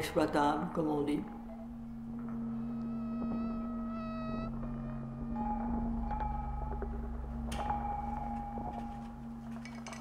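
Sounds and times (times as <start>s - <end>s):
low hum drone: 0.0s - 10.0s
higher ringing tone: 1.4s - 7.0s.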